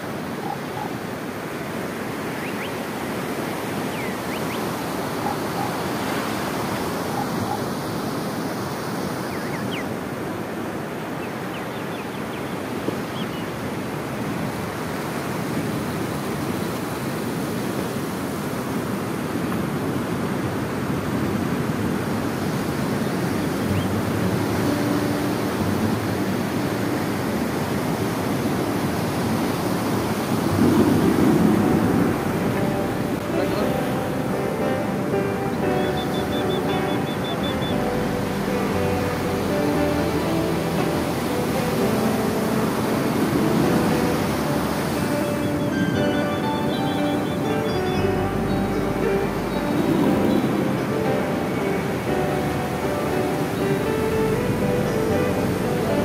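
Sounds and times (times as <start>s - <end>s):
wind on microphone: 12.2s - 56.0s
surf breaking on beach: 12.7s - 56.0s.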